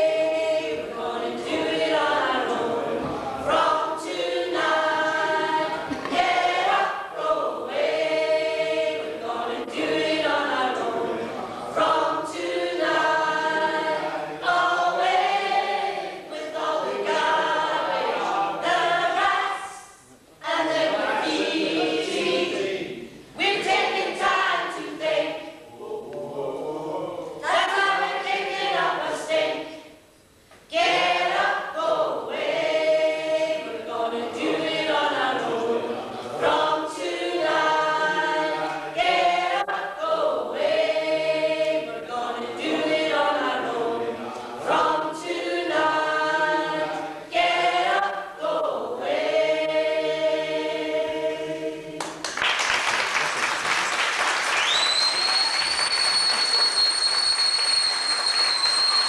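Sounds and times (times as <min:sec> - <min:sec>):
cast singing in chorus: 0:00.0 - 0:19.8, 0:30.7 - 0:52.2
applause: 0:52.0 - 0:59.0
shrill whistle: 0:54.5 - 0:59.0.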